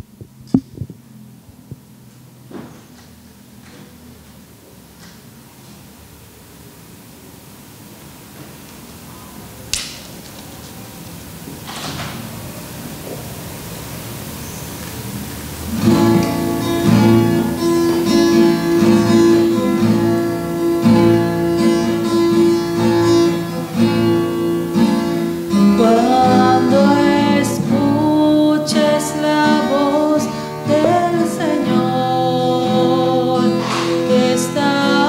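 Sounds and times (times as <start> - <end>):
room tone hiss: 0.0 - 35.0
microphone handling thumps: 0.2 - 1.9
strummed acoustic guitar music: 15.6 - 35.0.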